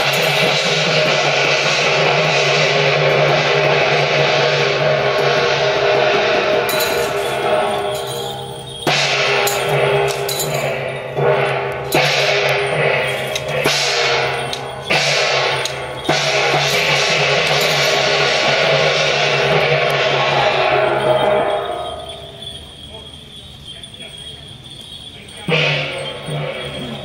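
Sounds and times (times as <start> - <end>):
crashing cymbals: 0.0 - 27.0
drum beats: 0.0 - 27.0.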